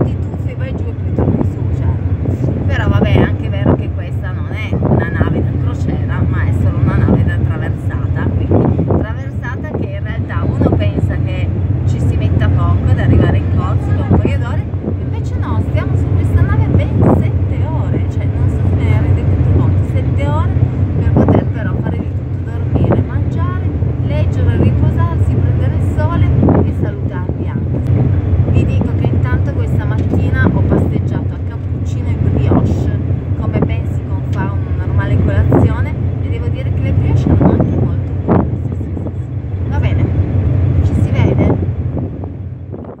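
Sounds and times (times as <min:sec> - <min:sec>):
woman talking: 0:00.0 - 0:27.9, 0:28.5 - 0:40.2, 0:40.8 - 0:41.7
ferry engines droning: 0:00.0 - 0:43.0.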